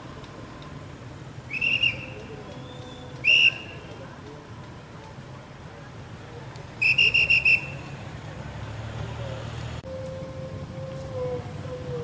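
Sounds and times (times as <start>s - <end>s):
vehicle engine running: 0.0s - 12.0s
pea whistle trilling blast: 1.5s - 3.8s, 6.8s - 7.8s.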